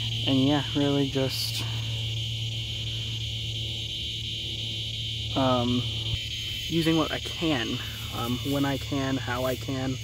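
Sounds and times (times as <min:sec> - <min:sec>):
crickets trilling: 0:00.0 - 0:10.0
low hum: 0:00.0 - 0:10.0.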